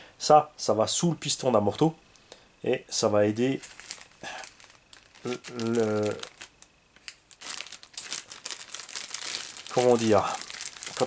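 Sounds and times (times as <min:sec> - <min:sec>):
plastic bag crinkling: 0:03.5 - 0:11.0
spoken syllable: 0:05.2 - 0:06.2.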